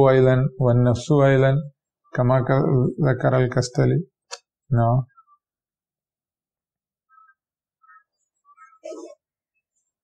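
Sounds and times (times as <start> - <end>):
faint high-pitched chirps: 7.0 - 10.0.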